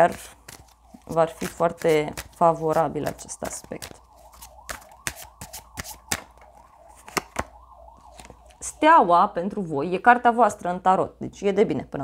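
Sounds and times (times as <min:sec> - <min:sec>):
cards being shuffled: 0:00.0 - 0:07.5, 0:08.1 - 0:08.4.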